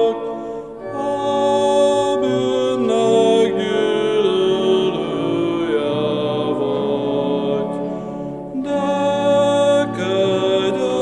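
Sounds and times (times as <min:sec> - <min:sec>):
man singing a slow hymn: 0:00.0 - 0:11.0.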